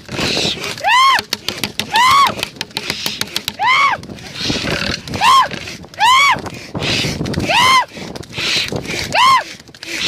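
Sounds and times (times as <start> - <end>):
cart moving: 0.0 - 10.0.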